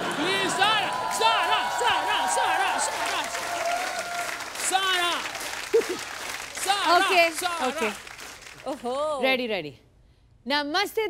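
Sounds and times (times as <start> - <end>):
audience applauding: 0.0 - 9.1.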